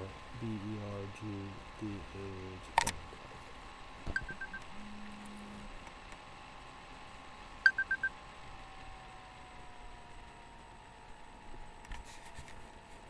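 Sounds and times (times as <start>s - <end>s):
faint steady hum: 0.0s - 13.0s
brief low tone: 4.1s - 5.7s
quick electronic beeps: 4.2s - 4.6s, 7.7s - 8.1s.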